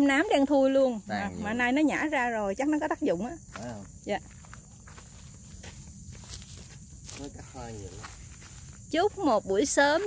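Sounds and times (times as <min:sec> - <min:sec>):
soft footsteps on dirt: 0:03.4 - 0:10.0.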